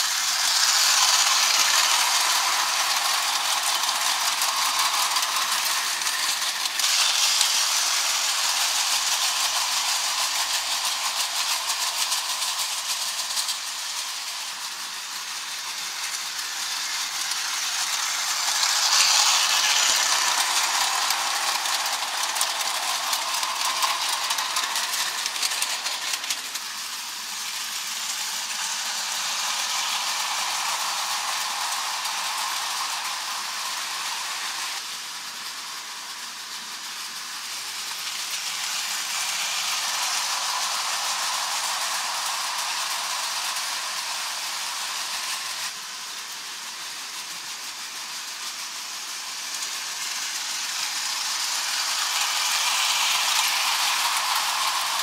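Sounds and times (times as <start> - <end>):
model trains rattling on track: 0.0 - 55.0.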